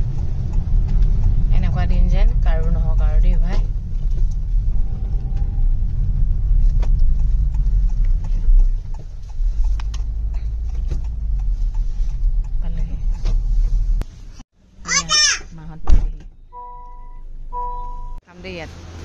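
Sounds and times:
light ticks: 0.0s - 1.4s
car cabin rumble on wet road: 0.0s - 14.4s.

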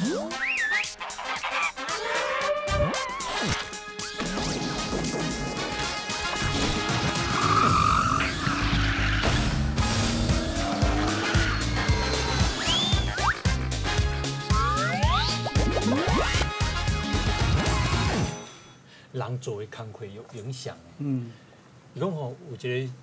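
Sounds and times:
cartoon tire screech: 0.0s - 3.7s, 7.3s - 9.6s, 10.8s - 13.5s, 14.6s - 16.4s
sliding whistle glides: 11.6s - 13.4s
pulsing bass beat: 12.6s - 16.7s.

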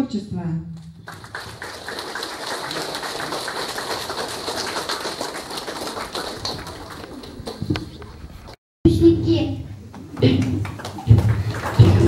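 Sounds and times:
audience applauding: 0.9s - 8.1s, 10.2s - 12.0s.

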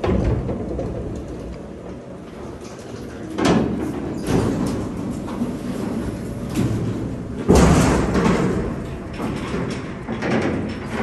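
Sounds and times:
metal gate rattling and rolling: 2.7s - 11.0s.

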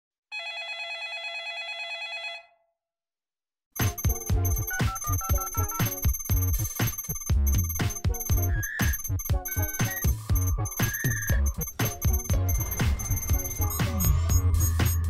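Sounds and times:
telephone bell ringing: 0.3s - 2.6s, 3.8s - 15.0s
music with strong beat: 3.8s - 15.0s.

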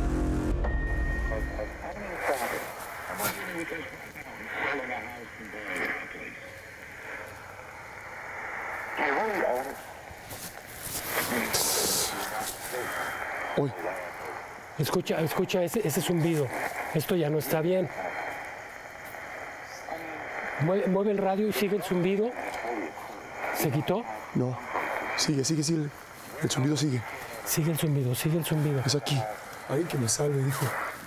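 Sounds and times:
low steady hum: 0.0s - 30.9s
radio static hiss: 0.0s - 31.0s
chopped radio voices: 1.2s - 31.0s.

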